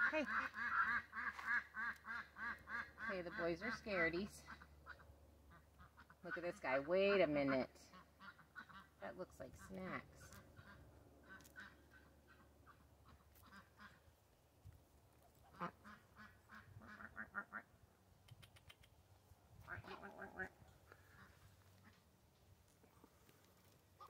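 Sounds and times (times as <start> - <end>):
ducks quacking softly: 0.0 - 9.0, 9.6 - 14.2, 15.2 - 17.8, 19.6 - 22.1.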